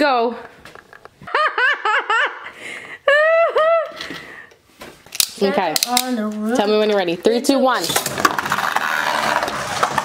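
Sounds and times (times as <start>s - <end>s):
person laughing: 1.2s - 4.1s.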